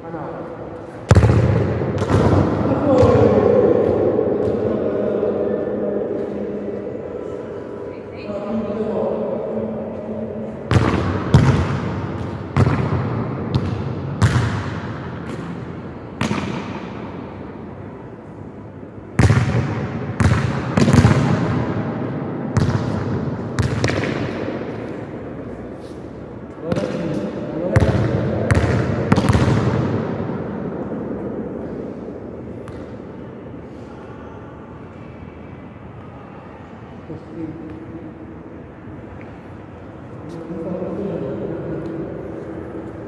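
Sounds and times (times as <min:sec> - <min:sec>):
football thuds with echo: 0:01.0 - 0:05.2, 0:10.6 - 0:17.2, 0:19.1 - 0:25.0, 0:26.6 - 0:31.2, 0:32.5 - 0:33.1.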